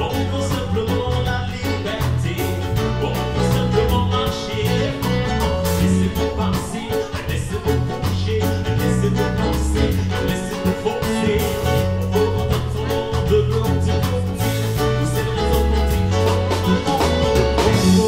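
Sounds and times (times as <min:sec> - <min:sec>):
lead singer: 0:00.0 - 0:18.0
live band playing upbeat song: 0:00.0 - 0:18.0.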